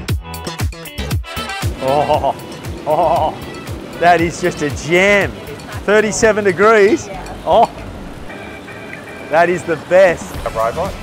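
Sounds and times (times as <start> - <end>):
background music: 0.0 - 11.0
spa jets churning water: 1.6 - 11.0.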